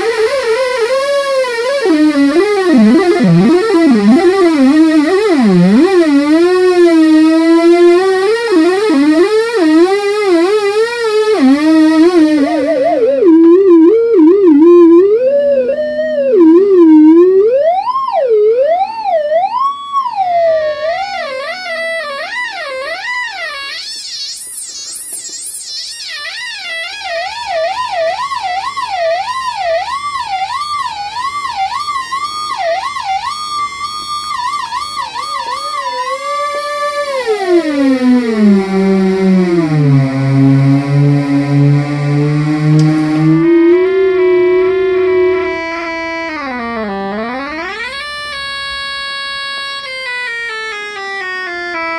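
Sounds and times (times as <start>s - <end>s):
lower stepping tone: 0.0s - 18.8s, 35.2s - 48.1s
wavering electronic tone: 0.0s - 28.0s, 28.6s - 48.2s
high whistling tone: 23.6s - 26.7s.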